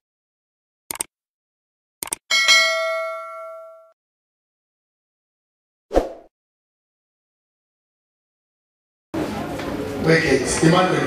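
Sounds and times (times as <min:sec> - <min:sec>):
bright bell ding: 0:02.3 - 0:04.0.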